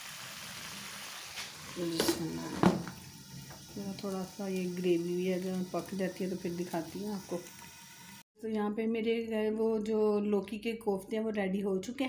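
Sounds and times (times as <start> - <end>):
curry simmering and sizzling: 0.0 - 8.3
person speaking: 1.7 - 2.8.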